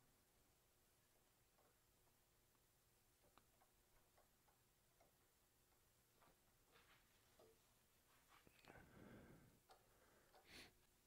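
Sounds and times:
faint small clicks: 0:03.2 - 0:06.4, 0:09.6 - 0:10.9
soft rustle: 0:05.7 - 0:09.2.

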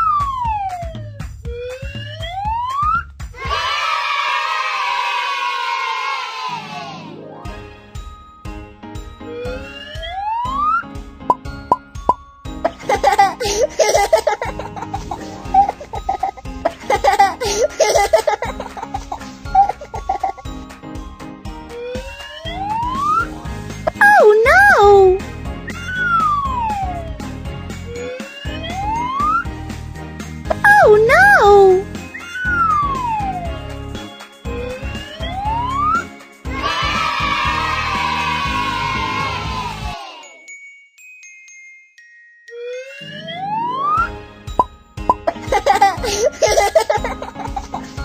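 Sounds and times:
light background music: 0:06.8 - 0:40.2, 0:41.0 - 0:48.0
cartoon plop effects: 0:23.9 - 0:25.2, 0:30.5 - 0:31.8, 0:42.9 - 0:45.8
cartoon slide whistle: 0:23.9 - 0:27.1, 0:30.5 - 0:33.5, 0:35.1 - 0:36.1.

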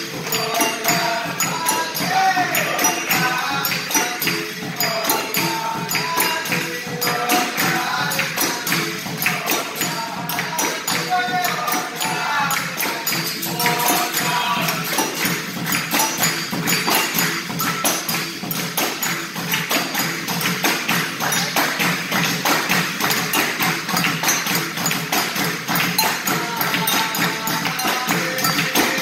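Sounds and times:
hand drum rhythm: 0:00.0 - 0:29.0
people clapping along: 0:00.0 - 0:29.0
tambourine rhythm: 0:00.0 - 0:29.0.

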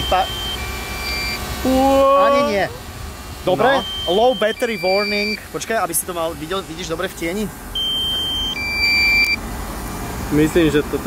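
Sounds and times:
electronic warning beeps: 0:00.0 - 0:01.4, 0:03.6 - 0:05.4, 0:07.7 - 0:09.4.

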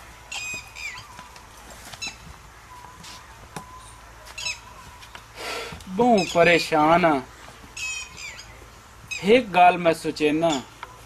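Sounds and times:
bird squawking: 0:00.3 - 0:01.3, 0:04.3 - 0:04.8, 0:06.0 - 0:06.7, 0:07.8 - 0:09.7, 0:10.4 - 0:10.7.

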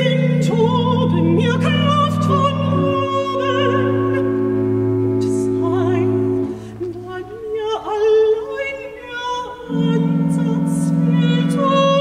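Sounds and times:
low sustained continuo note: 0:00.0 - 0:12.0
soprano singing with vibrato: 0:00.0 - 0:12.0.

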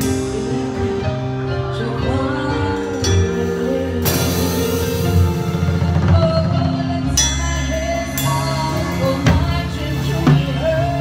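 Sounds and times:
band music: 0:00.0 - 0:11.0
drum kit playing: 0:00.0 - 0:11.0.

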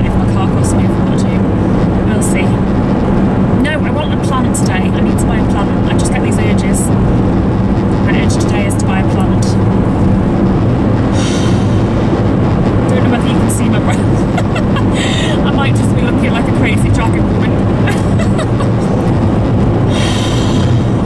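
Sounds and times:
car engine drone: 0:00.0 - 0:21.0
road noise: 0:00.0 - 0:21.0.

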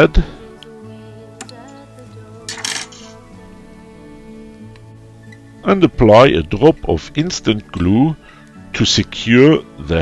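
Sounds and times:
soft music with held notes: 0:00.0 - 0:10.0.

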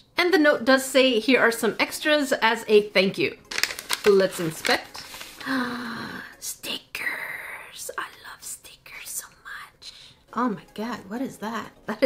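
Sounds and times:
woman whispering breathily: 0:05.4 - 0:10.1.

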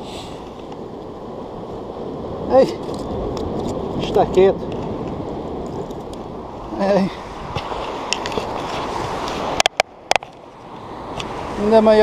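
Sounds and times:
surf washing on rocks: 0:00.0 - 0:12.0
wind on microphone: 0:00.0 - 0:12.0.

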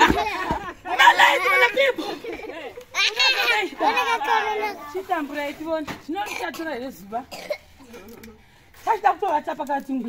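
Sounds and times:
lively high-pitched talk: 0:00.0 - 0:06.8
children's voices: 0:00.2 - 0:05.3.

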